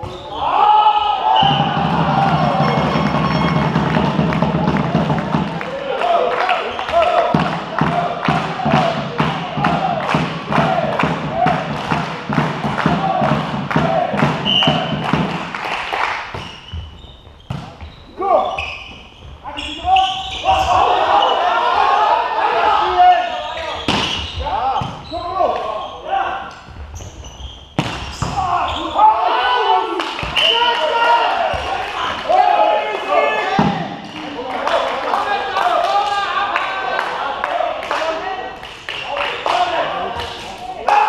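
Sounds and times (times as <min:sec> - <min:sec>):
players calling out: 0:00.0 - 0:15.3, 0:18.0 - 0:26.5
hands hitting volleyball: 0:06.9 - 0:15.6, 0:27.8 - 0:28.4.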